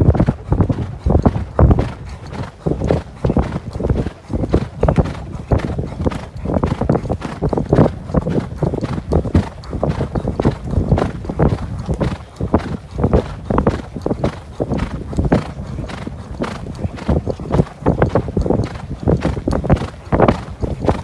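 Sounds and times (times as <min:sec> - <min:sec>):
horse hoofbeats on sand: 0:00.0 - 0:21.0.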